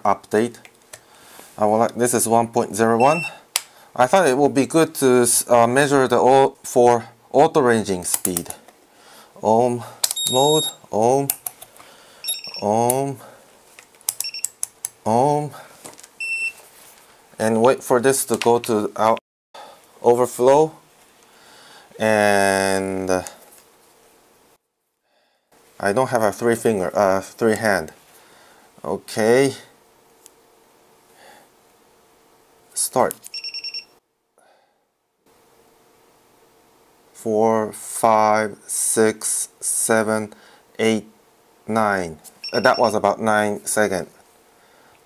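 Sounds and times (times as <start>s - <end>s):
short high beep: 3.0s - 3.4s, 10.2s - 10.8s, 12.2s - 12.6s.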